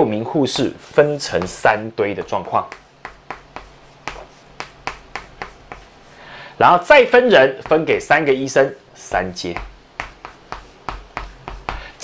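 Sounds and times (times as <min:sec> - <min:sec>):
chalk tapping on chalkboard: 0:00.4 - 0:06.2, 0:07.4 - 0:08.1, 0:09.1 - 0:12.0.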